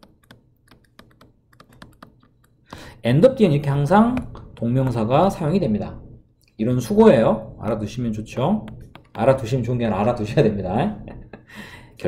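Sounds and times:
stylus tapping on tablet screen: 0.0s - 3.0s, 4.0s - 5.4s, 8.6s - 9.5s.

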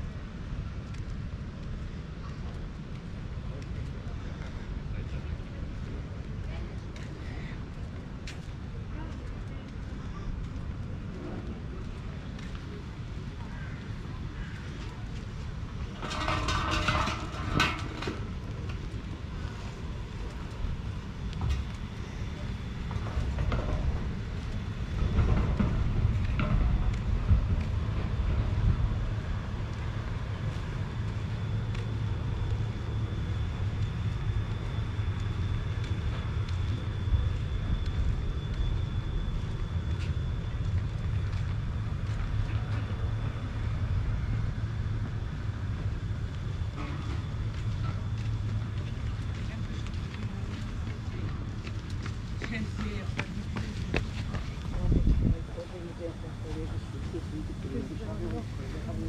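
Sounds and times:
low steady rumble: 0.0s - 59.0s.

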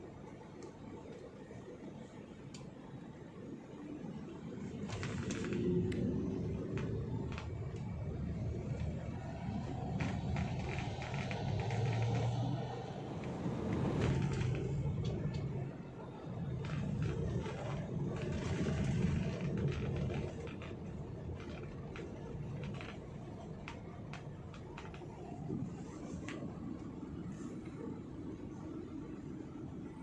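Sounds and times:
car engine and tyres rumbling: 0.0s - 30.0s.

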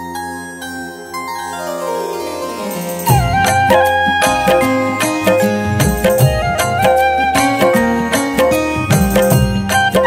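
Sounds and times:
held low note: 1.2s - 9.6s.

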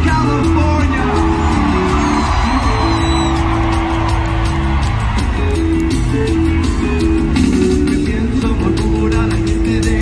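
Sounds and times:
crowd cheering and shouting: 0.0s - 10.0s
live rock band playing: 0.0s - 10.0s.

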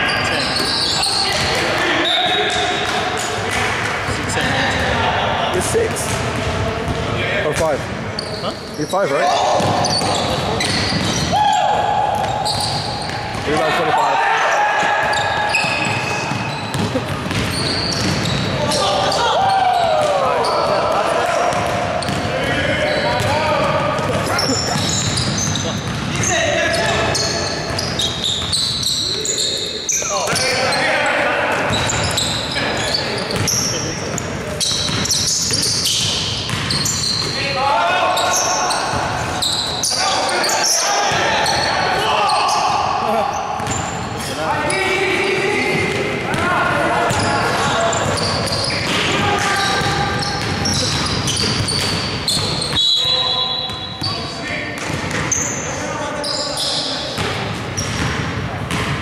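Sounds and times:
sneaker squeaks: 0.0s - 4.9s, 5.6s - 59.0s
players calling out: 0.0s - 58.1s.

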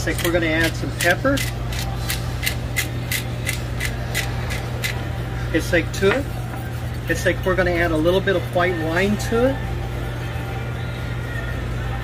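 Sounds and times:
pepper mill grinding: 0.0s - 5.0s.

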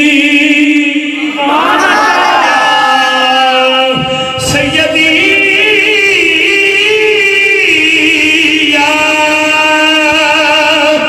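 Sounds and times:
man chanting: 0.0s - 1.8s, 2.7s - 11.0s.

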